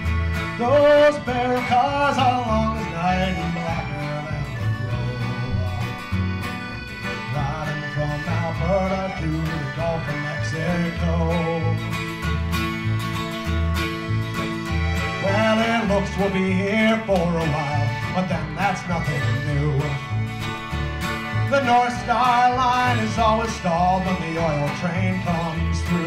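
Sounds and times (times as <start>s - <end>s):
bass line: 0.0s - 26.0s
plucked acoustic guitar: 0.0s - 26.0s.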